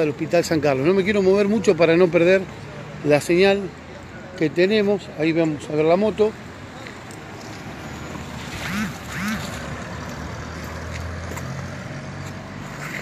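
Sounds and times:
street background: 0.0s - 13.0s.

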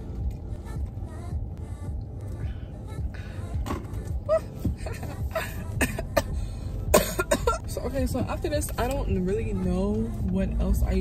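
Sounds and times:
woman speaking: 7.7s - 11.0s.

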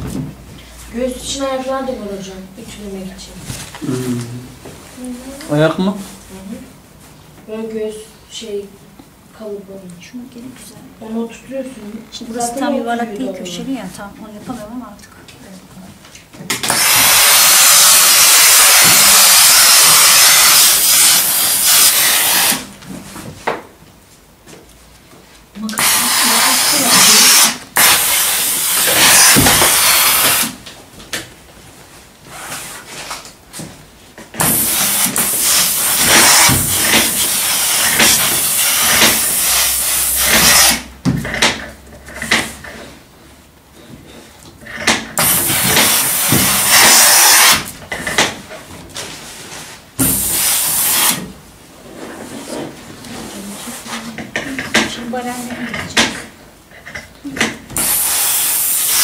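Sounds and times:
steam iron hissing: 16.6s - 22.7s, 25.8s - 30.6s, 34.4s - 40.9s, 45.2s - 47.7s, 50.0s - 51.2s, 57.8s - 59.0s.

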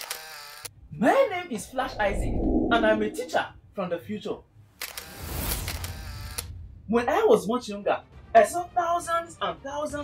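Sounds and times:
low rumble: 1.6s - 3.4s.

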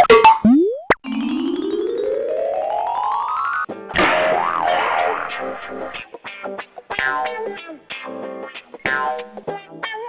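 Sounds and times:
background music: 1.1s - 10.0s
comic boing sound effect: 3.9s - 6.0s.

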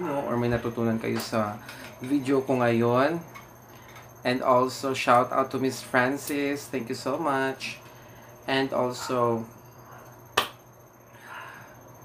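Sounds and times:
sharp click: 10.4s - 10.6s
faint breathy sound: 11.1s - 11.9s.

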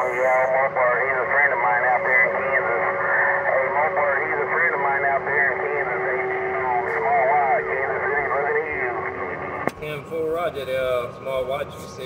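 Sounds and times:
man talking over radio: 0.0s - 12.0s.

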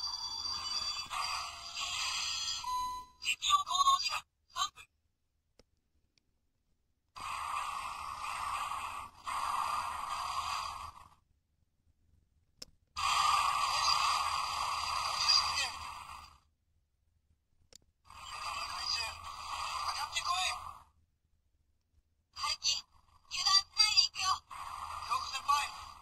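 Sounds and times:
voice from small toy speaker: 3.2s - 4.9s, 15.2s - 15.8s, 18.3s - 19.2s, 19.9s - 20.7s, 22.4s - 25.8s.

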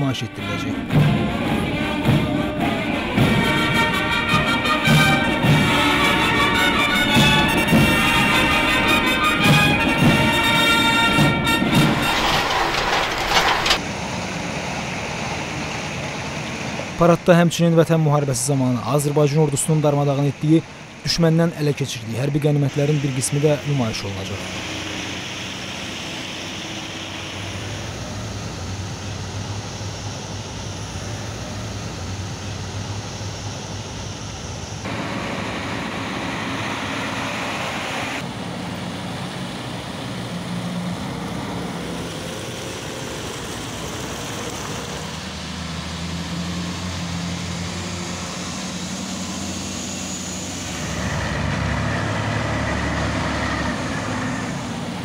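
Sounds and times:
heavy vehicle engines running: 0.0s - 55.0s.

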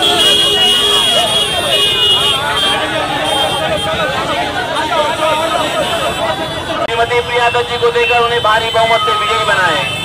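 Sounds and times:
crowd shouting and cheering: 0.0s - 9.9s.

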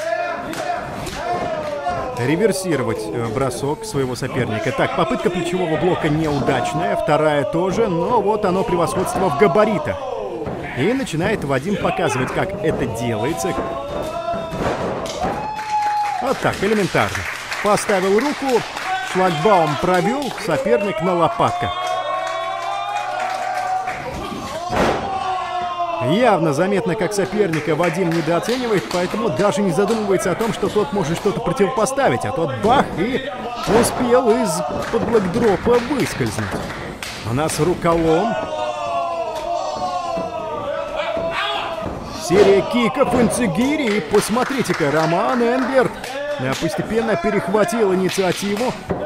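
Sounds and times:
man talking: 2.1s - 13.7s, 16.2s - 21.8s, 26.0s - 36.6s, 37.2s - 38.5s, 42.1s - 48.9s
person shouting: 11.7s - 14.5s.

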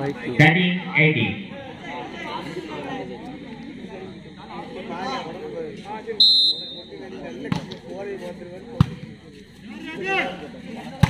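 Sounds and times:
crowd chatter: 0.0s - 11.0s
referee's whistle blast: 6.2s - 6.9s.

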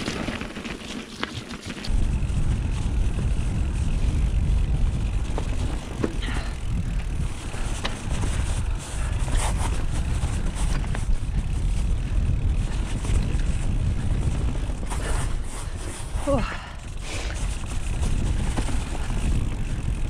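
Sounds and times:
bike rattling over bumps: 0.0s - 20.0s
tyres rumbling on dirt: 0.0s - 20.0s
wind on microphone: 1.9s - 20.0s.

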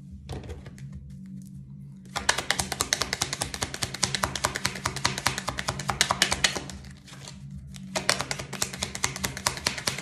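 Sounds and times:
cards being shuffled: 2.1s - 10.0s.

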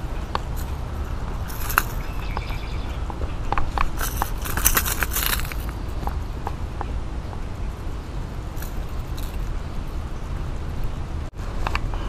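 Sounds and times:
steady low rumble: 0.0s - 11.8s.

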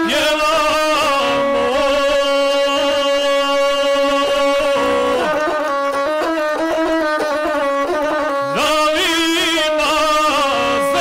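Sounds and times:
person singing: 0.0s - 6.8s, 8.3s - 11.0s
bowed single-string fiddle: 0.0s - 11.0s.

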